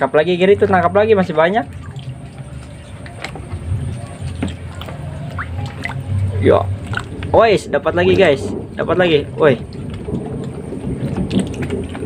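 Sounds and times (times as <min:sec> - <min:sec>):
water splashing in a tub: 0:00.0 - 0:12.0.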